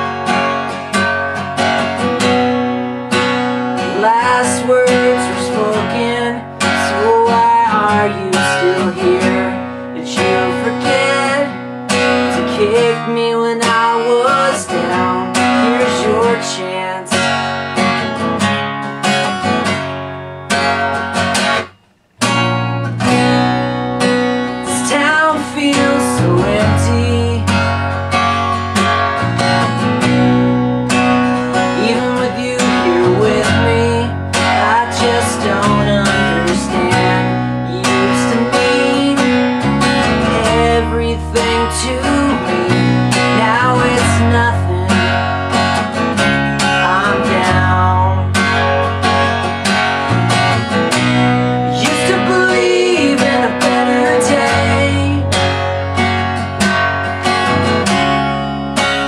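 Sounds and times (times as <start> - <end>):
acoustic guitar strumming: 0.0 - 59.0
man singing: 3.8 - 11.6, 12.2 - 17.3, 24.6 - 27.6, 31.6 - 45.2, 46.2 - 48.5, 51.7 - 55.4
electric bass: 21.5 - 59.0.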